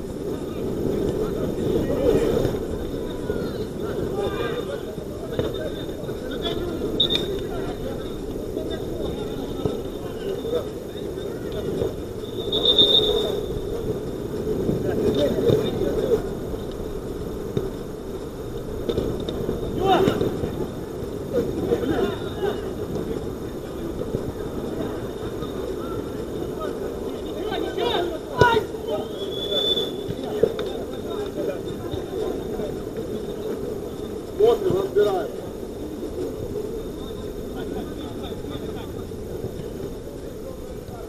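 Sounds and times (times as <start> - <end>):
short high whistle tone: 12.2 - 13.6, 28.9 - 30.1
distant shouts of players: 27.4 - 30.4.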